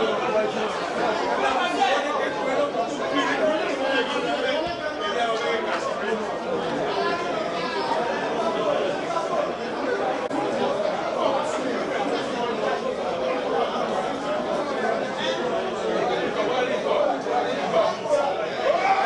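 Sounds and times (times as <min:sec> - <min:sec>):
chatter of many spectators: 0:00.0 - 0:19.0.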